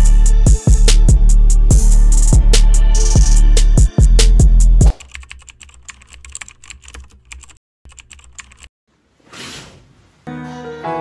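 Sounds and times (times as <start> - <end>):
computer keyboard typing: 4.9 - 8.7.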